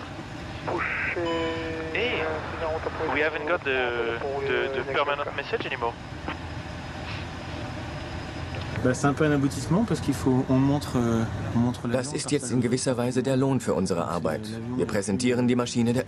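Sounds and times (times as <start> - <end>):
aircraft cockpit rumble: 0.0 - 16.0
man talking: 8.9 - 16.0.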